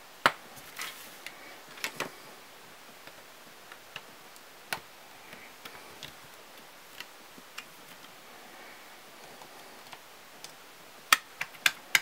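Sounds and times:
plastic bricks clicking: 9.4 - 12.0.

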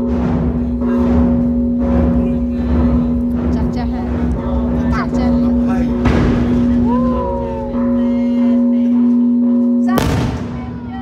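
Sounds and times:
music: 0.0 - 11.0
people's voices: 0.7 - 11.0.

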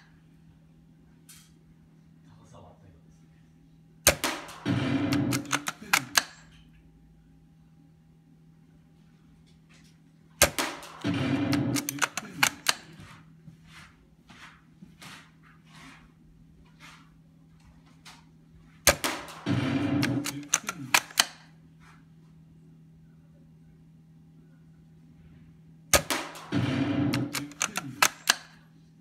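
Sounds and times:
airsoft rifle shot: 4.1 - 6.3, 10.4 - 12.8, 18.9 - 21.3, 25.9 - 28.5
rifle bolt being worked: 5.1 - 6.4, 11.5 - 12.9, 20.0 - 21.4, 27.1 - 28.6
bolt closing clicks: 5.2 - 6.5, 20.0 - 21.4, 27.1 - 28.6.

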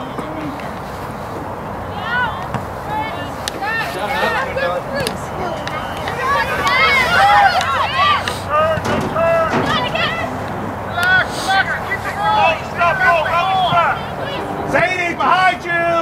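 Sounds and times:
people shouting and calling out: 0.0 - 16.0.

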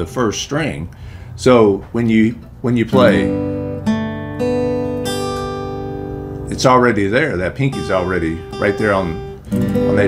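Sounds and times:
acoustic guitar picking notes: 1.6 - 10.0.

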